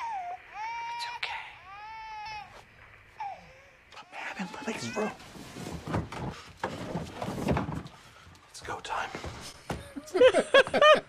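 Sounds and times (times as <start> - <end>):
baby crying through monitor speaker: 0.0 - 5.2.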